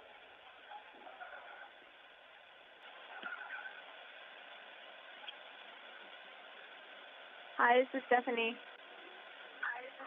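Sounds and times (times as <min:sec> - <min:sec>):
phone line hiss: 0:02.9 - 0:04.0.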